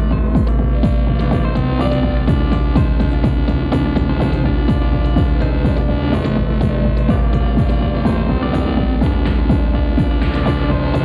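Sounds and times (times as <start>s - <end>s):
kick drum: 0.0s - 11.0s
low drone: 0.0s - 11.0s
sustained synth tones: 0.0s - 11.0s.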